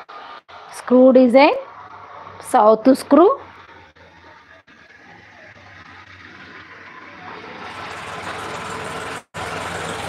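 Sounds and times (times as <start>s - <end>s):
vehicle engine rumble: 1.6s - 10.0s.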